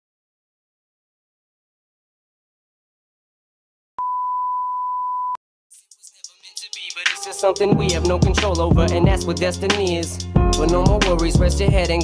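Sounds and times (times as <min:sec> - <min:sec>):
steady test tone beep: 0:04.0 - 0:05.4.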